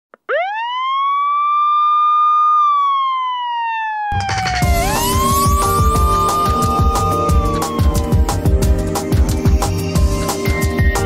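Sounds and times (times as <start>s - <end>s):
siren wail: 0.1s - 10.5s.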